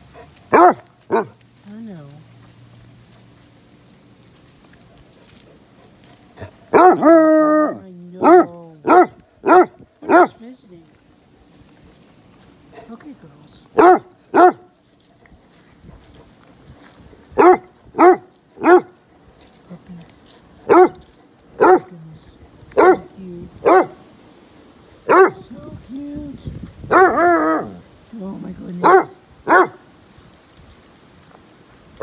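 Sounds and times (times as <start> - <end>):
dog barking and baying: 0.1 - 1.4, 6.4 - 10.4, 13.8 - 14.7, 17.4 - 19.0, 20.6 - 21.0, 21.6 - 21.9, 22.7 - 24.0, 25.0 - 25.5, 26.9 - 27.9, 28.8 - 29.8.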